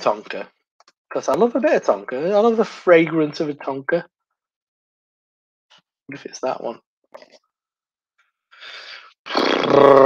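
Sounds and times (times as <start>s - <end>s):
man speaking: 0.0s - 0.5s, 1.1s - 4.0s, 6.1s - 6.8s
man exhaling: 8.6s - 9.9s
man's drawn-out vocal sound: 9.3s - 10.0s.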